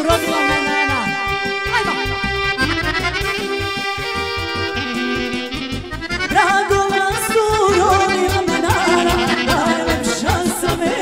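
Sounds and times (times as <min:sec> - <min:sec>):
person singing: 0:00.0 - 0:02.2, 0:06.2 - 0:11.0
steady bass beat: 0:00.0 - 0:06.5
live folk band music: 0:00.0 - 0:11.0
saxophone: 0:00.0 - 0:11.0.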